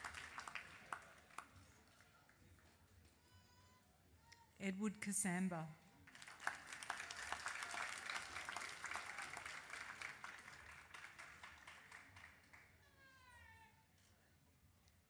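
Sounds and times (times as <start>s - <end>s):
audience applauding: 0.0s - 2.2s, 6.0s - 12.7s.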